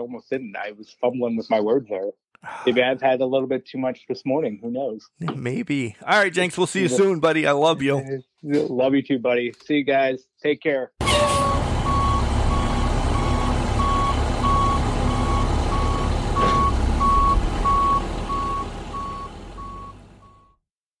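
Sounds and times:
reversing alarm beeping: 11.4s - 20.5s.

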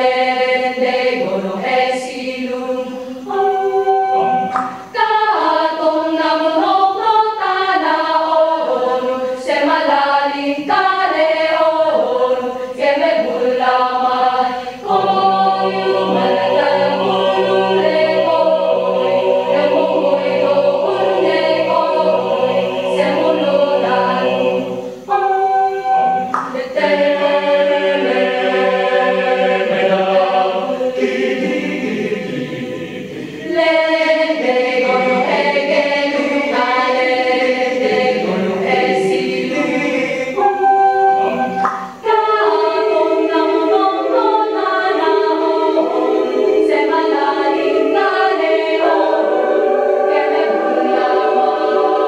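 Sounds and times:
choir singing a cappella: 0.0s - 52.0s.

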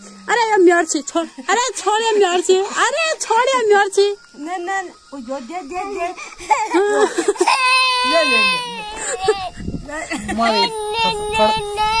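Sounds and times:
toddler crying: 6.2s - 12.0s.

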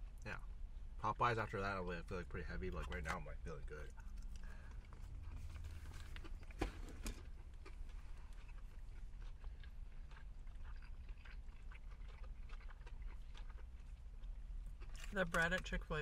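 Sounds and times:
people chewing food: 0.0s - 16.0s.

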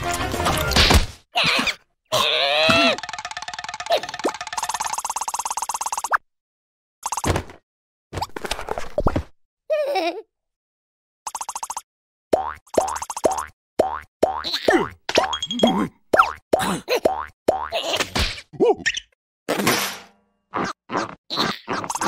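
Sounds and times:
springy cartoon boings: 2.6s - 6.0s.

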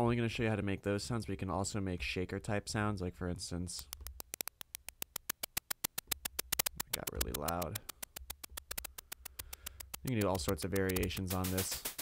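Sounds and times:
synthesised shaker ticks: 3.7s - 12.0s.

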